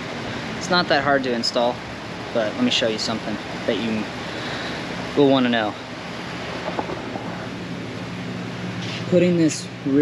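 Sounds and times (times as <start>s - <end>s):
shop fan hissing: 0.0s - 10.0s
low hum: 4.2s - 8.8s.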